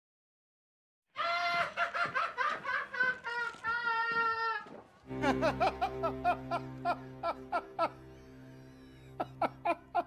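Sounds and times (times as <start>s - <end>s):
person laughing high-pitched: 1.2s - 10.0s.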